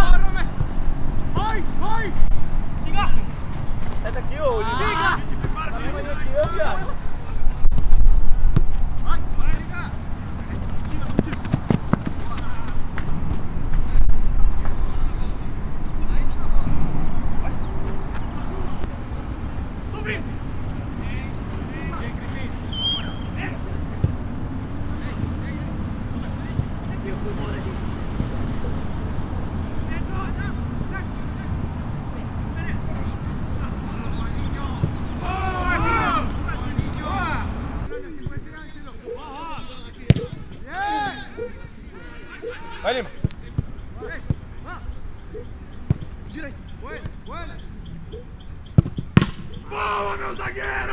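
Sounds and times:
players shouting: 0:00.0 - 0:07.5, 0:32.5 - 0:47.7, 0:49.2 - 0:50.9
football being kicked: 0:07.7 - 0:08.9, 0:40.1 - 0:40.6, 0:48.8 - 0:49.5.

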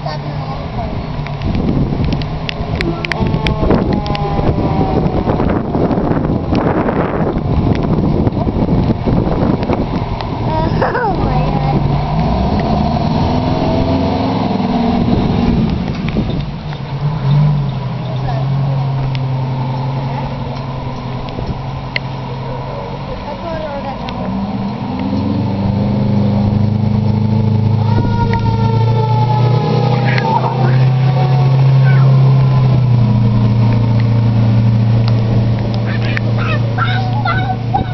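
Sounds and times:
diesel engines rumbling: 0:00.0 - 0:37.9
siren gliding down: 0:02.7 - 0:06.5, 0:27.3 - 0:33.5.

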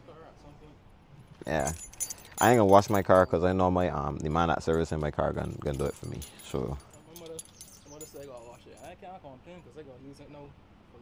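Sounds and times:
man talking: 0:01.4 - 0:01.8, 0:02.4 - 0:07.4
keys jingling: 0:01.4 - 0:09.0.

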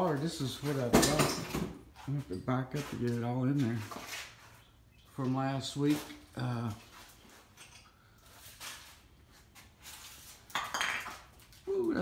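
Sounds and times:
faint shuffling: 0:01.9 - 0:10.5
hard objects knocking and clinking: 0:10.5 - 0:11.3.

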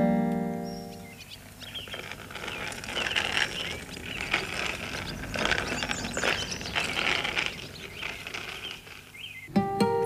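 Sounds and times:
bicycle creaking and clicking: 0:00.6 - 0:09.5.

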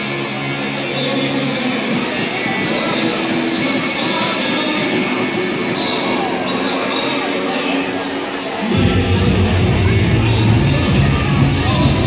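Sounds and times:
echoing public address voice: 0:00.0 - 0:12.0.

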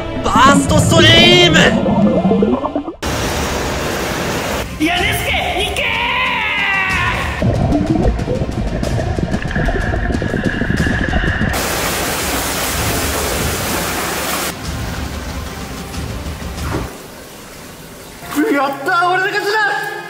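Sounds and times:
background music: 0:00.0 - 0:03.0, 0:04.6 - 0:11.6, 0:12.2 - 0:20.0
loud rushing hiss: 0:11.6 - 0:14.5.

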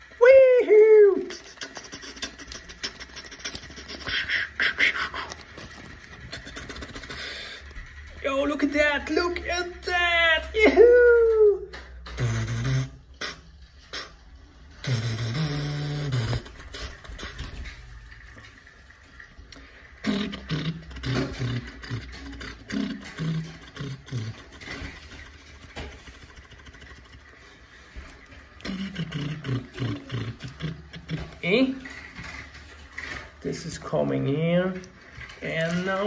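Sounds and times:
man humming: 0:20.0 - 0:24.8, 0:28.6 - 0:31.4.

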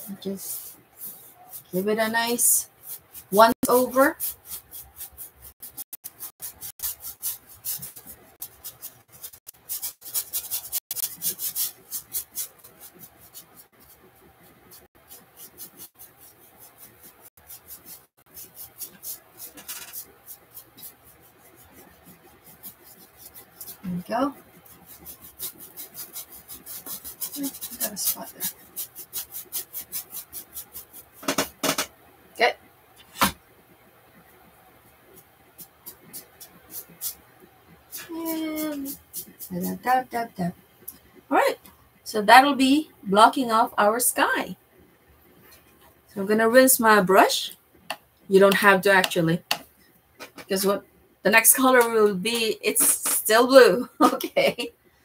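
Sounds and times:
paintbrush scrubbing on canvas: 0:00.2 - 0:31.3, 0:35.1 - 0:37.2, 0:37.9 - 0:40.0.

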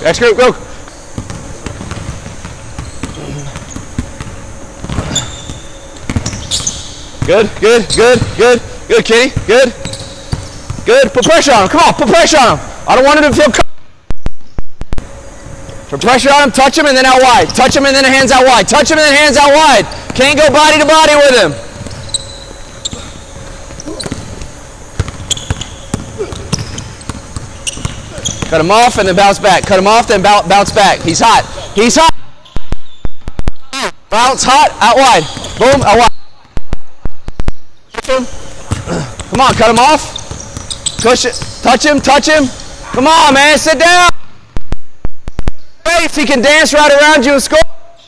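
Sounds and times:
sneaker squeak: 0:00.7 - 0:08.4, 0:09.4 - 0:11.6, 0:17.4 - 0:17.8, 0:19.7 - 0:20.4, 0:21.6 - 0:29.8, 0:32.4 - 0:33.7, 0:35.1 - 0:36.6, 0:38.5 - 0:43.1
basketball dribbling on hardwood: 0:01.2 - 0:08.4, 0:22.8 - 0:31.2, 0:38.7 - 0:42.1.

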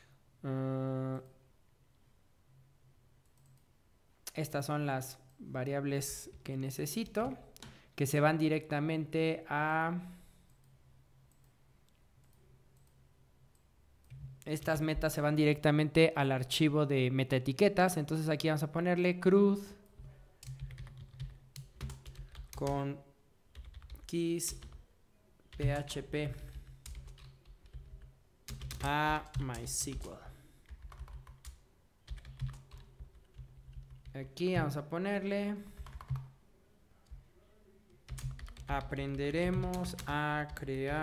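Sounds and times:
computer keyboard typing: 0:19.9 - 0:22.8, 0:23.5 - 0:24.8, 0:25.5 - 0:34.8, 0:35.7 - 0:36.3, 0:38.0 - 0:41.0.

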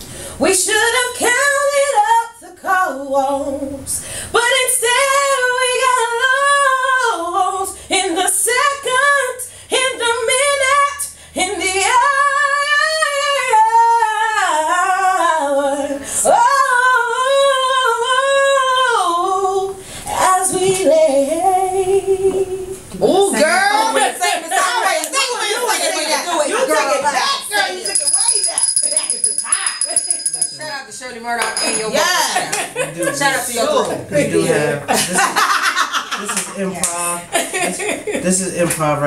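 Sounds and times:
woman singing a cappella: 0:00.3 - 0:27.9.

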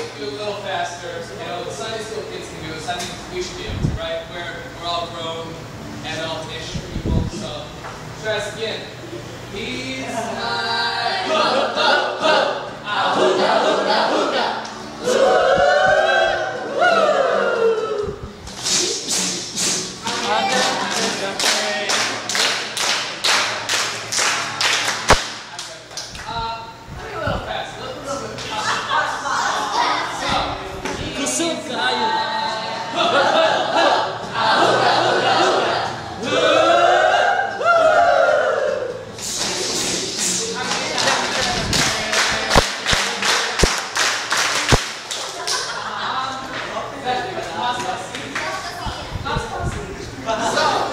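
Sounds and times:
group of people calling out: 0:11.1 - 0:18.3, 0:32.3 - 0:39.2
rhythmic clapping: 0:18.4 - 0:26.4, 0:39.1 - 0:45.9.

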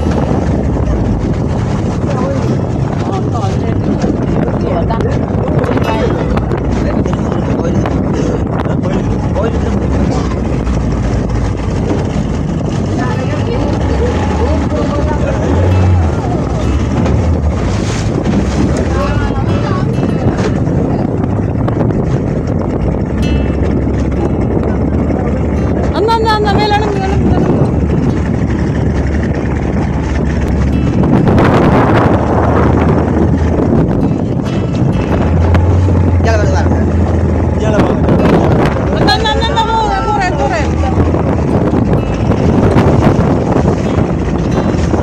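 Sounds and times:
hull slapping choppy water: 0:00.0 - 0:45.0
motorboat engine running: 0:00.0 - 0:45.0
wind buffeting microphone: 0:00.0 - 0:45.0.

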